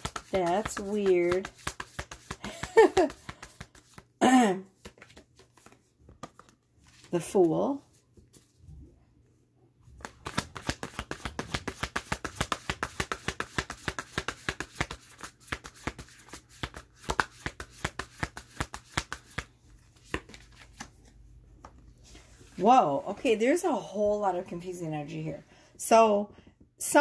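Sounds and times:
cards being shuffled by hand: 0.0 - 8.6, 10.0 - 22.6.

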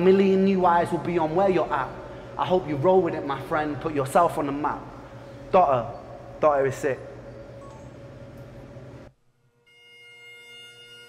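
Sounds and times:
music: 9.4 - 11.0
bagpipe drone: 9.6 - 11.0.

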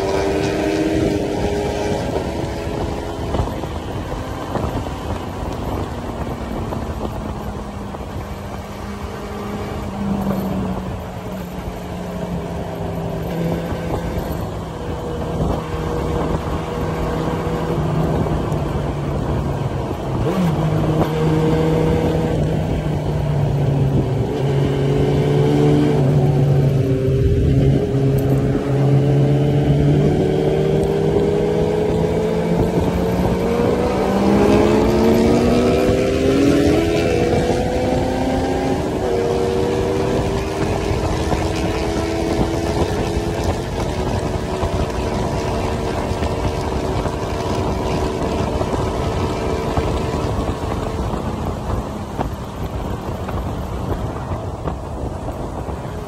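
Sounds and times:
motorcycle engine revving: 0.0 - 56.0
wind and road noise: 0.0 - 56.0.

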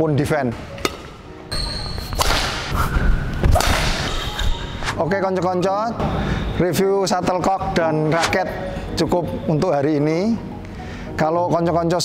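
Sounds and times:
racket swishing through air: 1.9 - 5.0.

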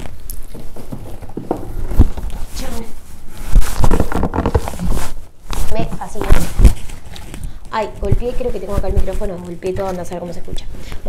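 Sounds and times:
cardboard box rustling: 0.4 - 10.5.

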